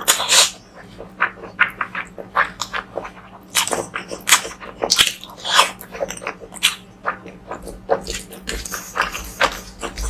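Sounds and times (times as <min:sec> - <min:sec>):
close chewing and wet mouth sounds: 0:00.0 - 0:10.0
faint steady hum: 0:00.0 - 0:10.0.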